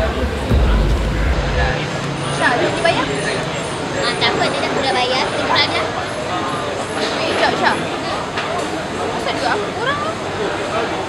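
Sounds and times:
outdoor traffic noise: 0:00.0 - 0:11.0.

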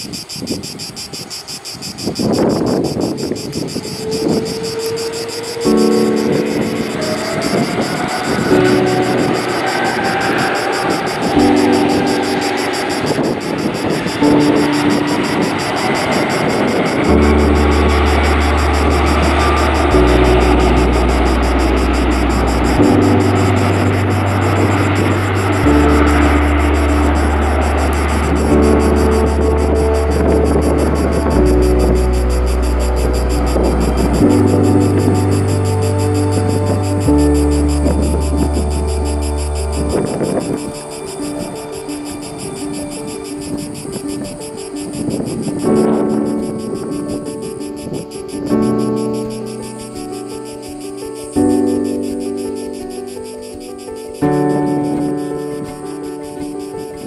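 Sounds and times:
jet engines: 0:00.0 - 0:51.6
music with repeating chords: 0:00.0 - 0:57.0
rising whine: 0:00.0 - 0:57.0
deep bass line: 0:17.0 - 0:40.9.

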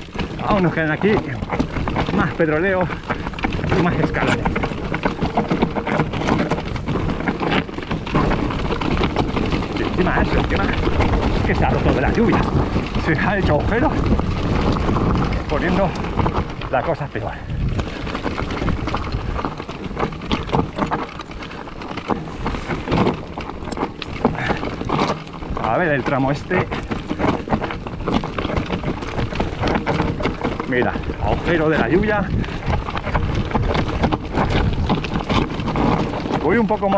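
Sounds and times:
bike rattling: 0:00.0 - 0:36.9
tyres crunching over stones: 0:00.0 - 0:36.9
wind on microphone: 0:00.0 - 0:36.9.

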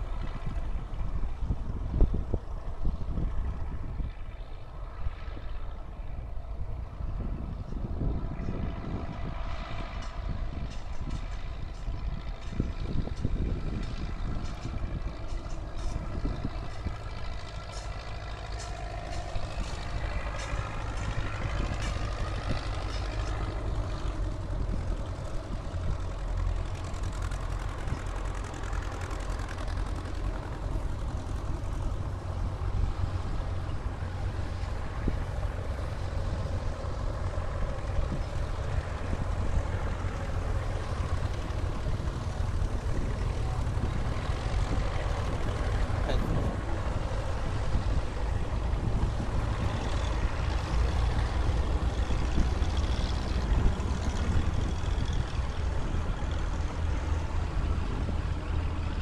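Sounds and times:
tractor engines driving past: 0:00.0 - 0:59.0.

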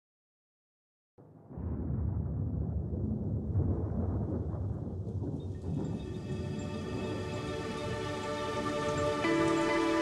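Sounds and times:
thunder rumble: 0:01.3 - 0:10.0
rain: 0:01.5 - 0:10.0
song music: 0:07.3 - 0:10.0.

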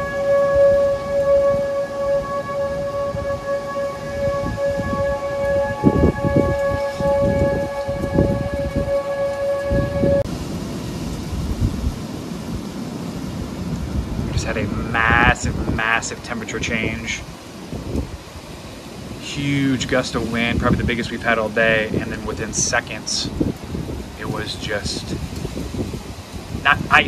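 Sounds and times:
warning siren steady tone: 0:00.0 - 0:10.3
wind rumbling on microphone: 0:00.0 - 0:27.0.

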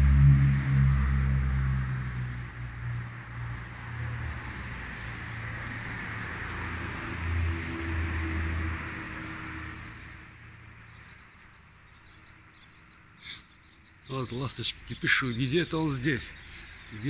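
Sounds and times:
vehicle engine humming: 0:00.0 - 0:12.7.

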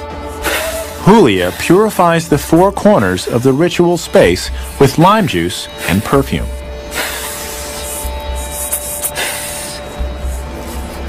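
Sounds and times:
hissing spray from mouth: 0:00.2 - 0:02.2, 0:03.0 - 0:11.0.

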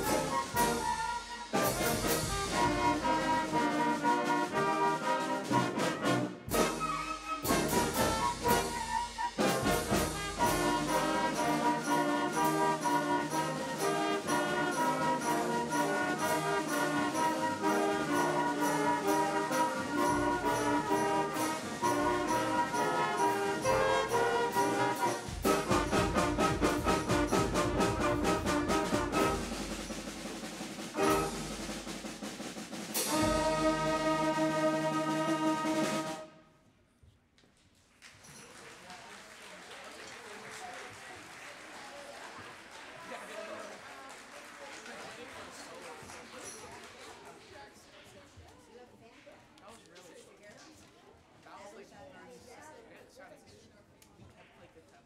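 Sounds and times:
percussion keeping a beat: 0:00.0 - 0:36.3
concert band playing: 0:00.0 - 0:36.4.

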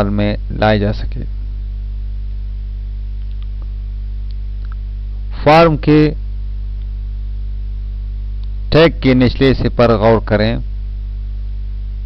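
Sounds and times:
low electrical mains hum: 0:00.0 - 0:12.0.

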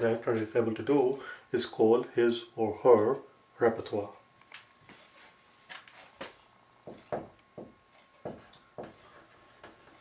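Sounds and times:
marker writing on whiteboard: 0:08.3 - 0:10.0.

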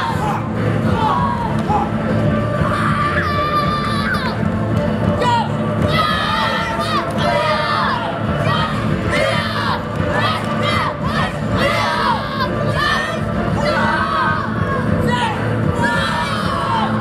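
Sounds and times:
children shouting battle cries: 0:02.6 - 0:04.4, 0:05.3 - 0:14.9.

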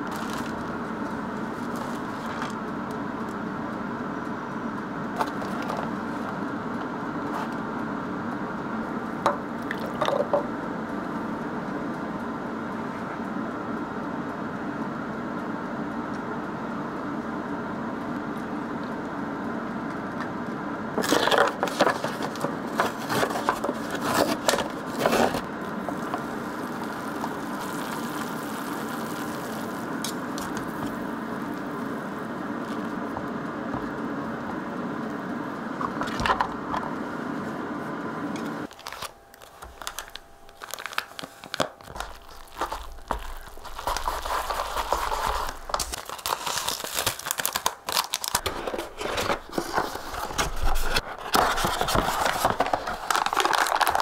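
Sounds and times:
packaging crackling and rustling: 0:00.0 - 0:02.6, 0:05.2 - 0:06.4, 0:21.0 - 0:33.0, 0:38.6 - 0:54.0
steady low hum: 0:00.0 - 0:54.0
paper lid peeling: 0:21.0 - 0:31.0, 0:38.7 - 0:54.0
water pouring into cup: 0:25.8 - 0:31.9.

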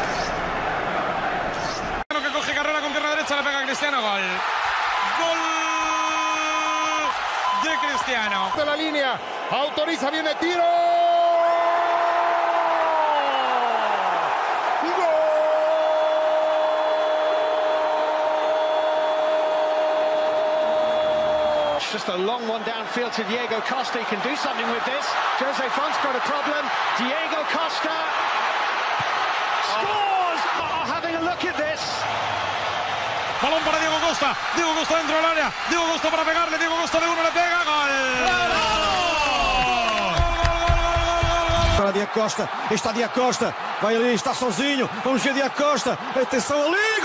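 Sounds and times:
stadium crowd noise: 0:00.0 - 0:47.0.

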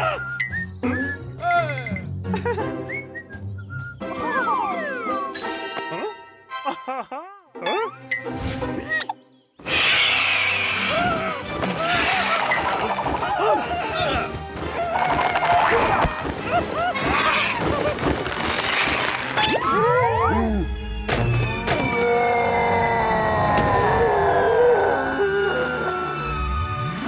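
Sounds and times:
light cartoon music: 0:00.0 - 0:27.0.

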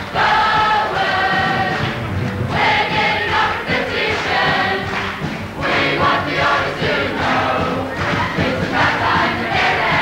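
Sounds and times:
young voices singing in chorus: 0:00.0 - 0:01.9, 0:05.6 - 0:10.0.

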